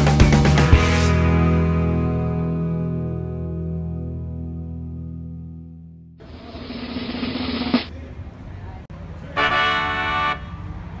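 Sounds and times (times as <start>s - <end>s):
car horn honking: 9.4s - 10.6s.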